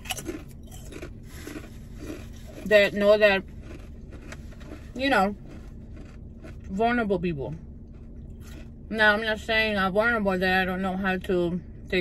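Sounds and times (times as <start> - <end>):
chewing crunches: 0.0 - 6.8, 7.8 - 8.8
chip bitten with crunch: 0.0 - 6.8.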